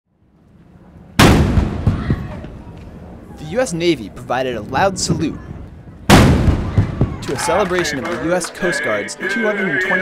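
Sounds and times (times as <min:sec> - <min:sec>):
cannon bang with echo: 0:01.2 - 0:02.4, 0:06.0 - 0:07.2.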